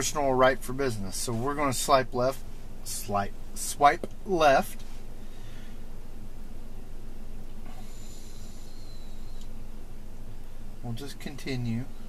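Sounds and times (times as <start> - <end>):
faint high whine: 0.0 - 12.0
light click: 9.4 - 9.6.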